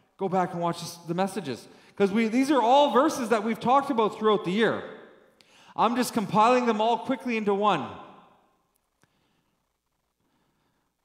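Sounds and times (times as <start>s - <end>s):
man's voice: 0.2s - 5.0s, 5.7s - 8.1s.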